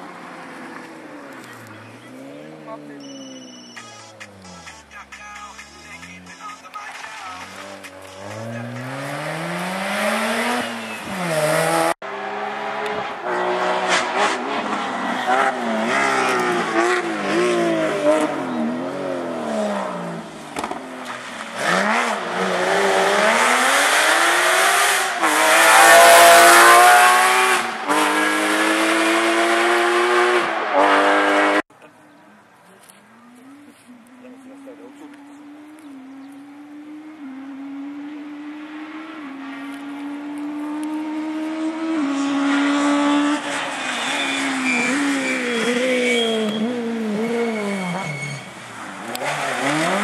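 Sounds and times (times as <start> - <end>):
car engines revving: 0.0 - 50.0.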